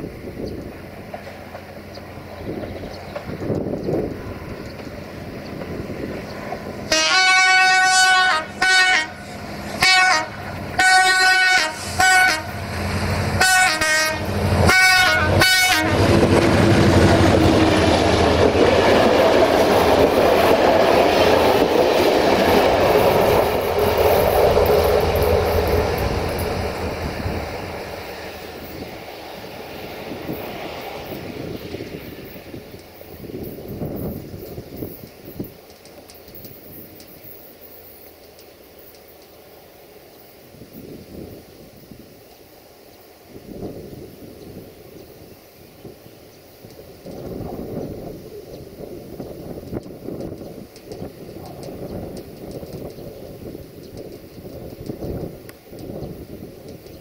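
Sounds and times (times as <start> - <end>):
train passing on rails: 0.0 - 57.0
locomotive horn blasts: 6.9 - 9.2, 9.8 - 12.6, 13.3 - 16.2.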